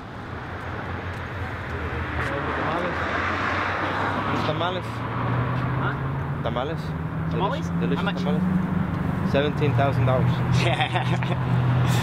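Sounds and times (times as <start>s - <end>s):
vehicle approaching on road: 0.0s - 12.0s.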